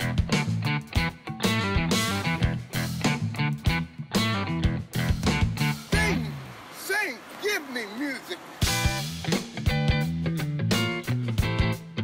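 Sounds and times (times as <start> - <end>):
live rock band playing: 0.0 - 6.2, 8.6 - 12.0.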